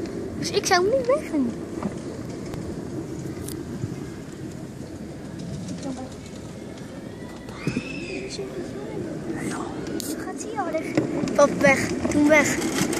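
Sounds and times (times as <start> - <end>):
sled rumbling on metal track: 0.0 - 12.9.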